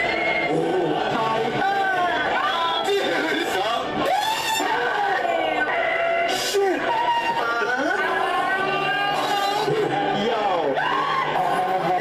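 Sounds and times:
background music: 0:00.0 - 0:12.0
people exclaiming and shouting: 0:00.0 - 0:12.0.

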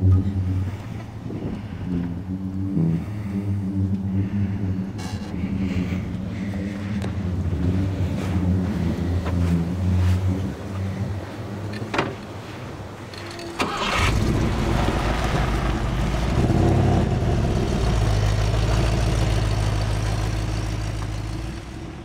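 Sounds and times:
truck engine starting and running: 0:00.0 - 0:22.0.

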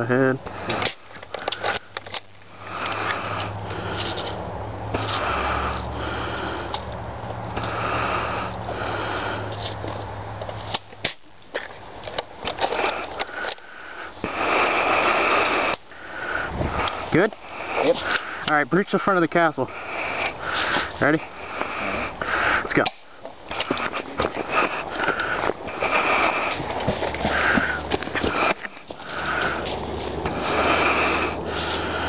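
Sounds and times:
person breathing and sniffing: 0:00.5 - 0:09.8, 0:12.6 - 0:32.0.

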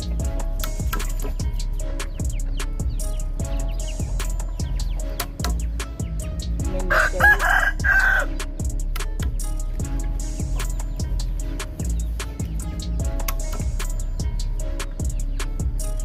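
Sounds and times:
rhythmic background music: 0:00.0 - 0:16.0
rooster crowing: 0:06.9 - 0:08.4.

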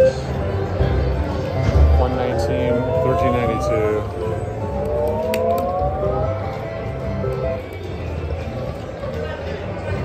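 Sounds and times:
slot machine electronic tones: 0:00.0 - 0:00.5, 0:01.9 - 0:07.6.

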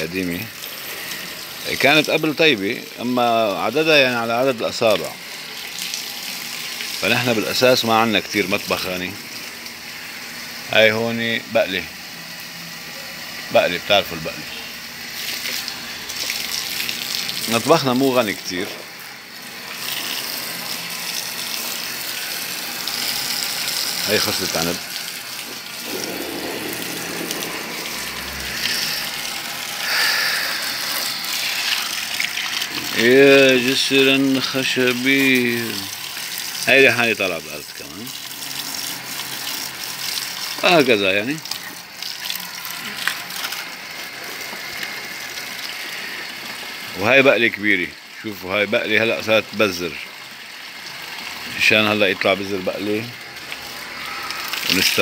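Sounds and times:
hose spraying water: 0:00.0 - 0:11.8, 0:13.6 - 0:47.8, 0:50.6 - 0:55.0.

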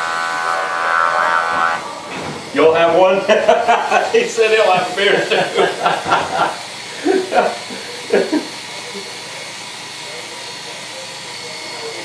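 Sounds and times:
electric hair clipper running: 0:00.0 - 0:12.0
person laughing: 0:03.2 - 0:08.6.

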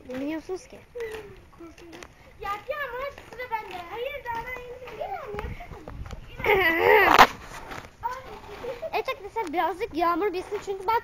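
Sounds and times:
children's voices: 0:00.0 - 0:11.0.

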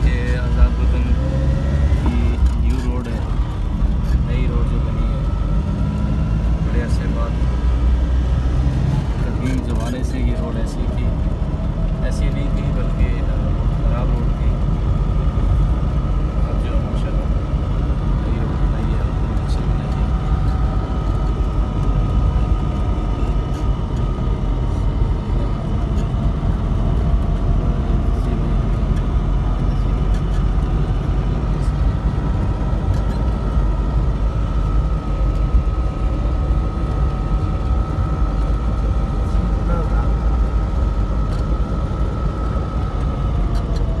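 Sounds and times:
sustained whine: 0:00.0 - 0:44.0
vehicle engine and tyres rumbling: 0:00.0 - 0:44.0.

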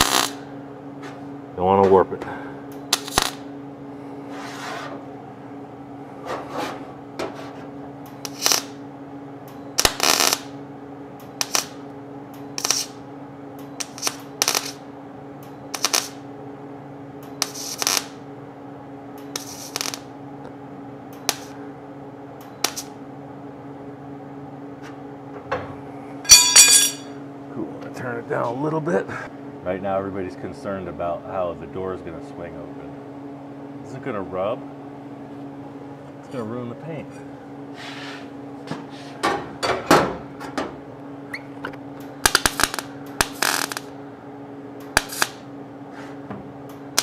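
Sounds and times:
welding arc crackling: 0:00.0 - 0:00.5, 0:02.9 - 0:03.5, 0:08.1 - 0:08.8, 0:09.8 - 0:10.6, 0:11.2 - 0:11.8, 0:12.6 - 0:13.0, 0:13.8 - 0:14.9, 0:15.7 - 0:16.2, 0:17.4 - 0:18.2, 0:19.3 - 0:20.1, 0:22.6 - 0:22.9, 0:42.0 - 0:44.0, 0:44.8 - 0:45.4
welder hum: 0:00.0 - 0:00.6, 0:02.7 - 0:04.3, 0:08.0 - 0:08.8, 0:09.8 - 0:10.6, 0:11.2 - 0:16.3, 0:17.2 - 0:18.2, 0:19.2 - 0:20.2, 0:22.4 - 0:23.0, 0:25.8 - 0:27.2, 0:41.3 - 0:44.0, 0:44.8 - 0:45.5, 0:46.7 - 0:47.0
metallic ringing: 0:26.2 - 0:27.2.

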